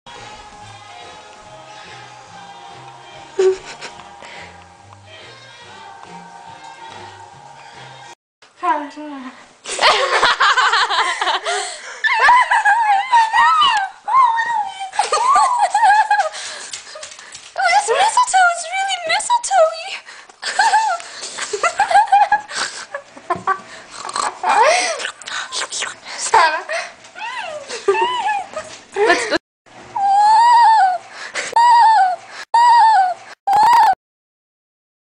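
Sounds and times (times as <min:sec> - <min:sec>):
dog whining: 0:27.2 - 0:28.8.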